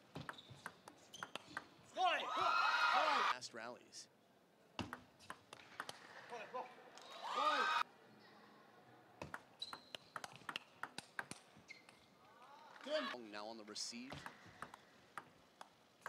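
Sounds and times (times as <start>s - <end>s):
table tennis ball clicks: 9.2s - 12.0s, 14.1s - 15.8s.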